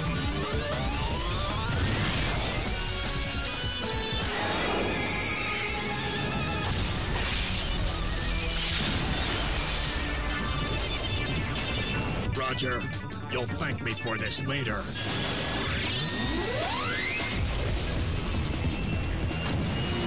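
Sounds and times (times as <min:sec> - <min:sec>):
dramatic cartoon soundtrack music: 0:00.0 - 0:20.0.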